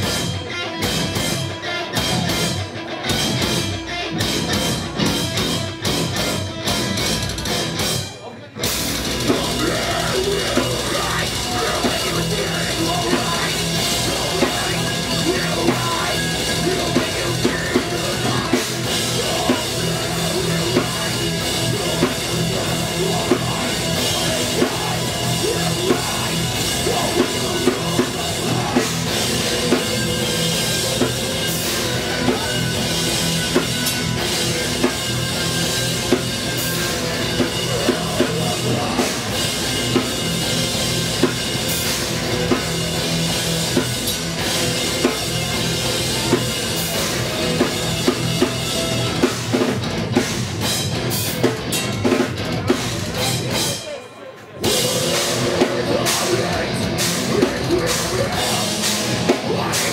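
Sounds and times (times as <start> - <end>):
live metal band playing: 0.0 - 59.9.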